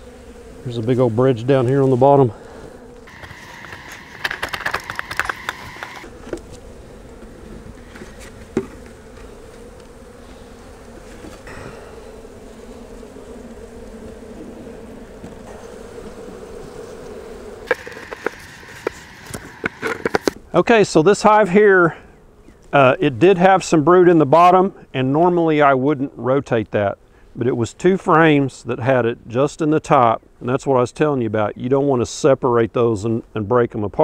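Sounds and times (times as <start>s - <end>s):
honey bees buzzing: 0.0s - 28.4s
metal tool scraping wood: 17.7s - 20.4s.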